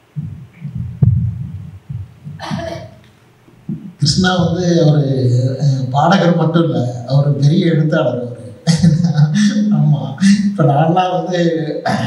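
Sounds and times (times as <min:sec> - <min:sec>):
microphone handling thumps: 0:00.0 - 0:04.7
sharp knock on microphone: 0:03.7 - 0:03.9.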